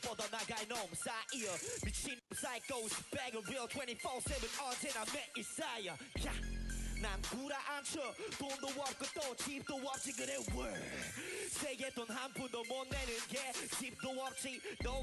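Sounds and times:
hip hop beat: 0.0 - 15.0
man rapping: 0.0 - 15.0
deep bass notes: 6.2 - 7.3.

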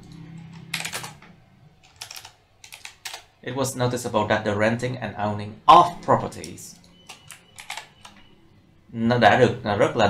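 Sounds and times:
computer keyboard keystrokes: 0.0 - 1.2, 1.8 - 3.3, 6.4 - 8.3.

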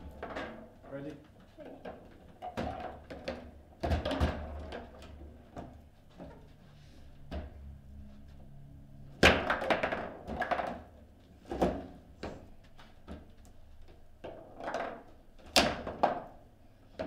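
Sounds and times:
plastic knocks of table football: 1.9 - 5.7.

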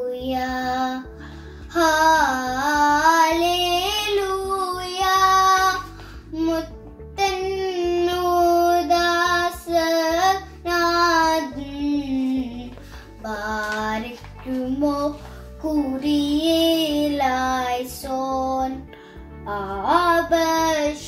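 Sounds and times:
girl singing a hymn: 0.0 - 21.0.

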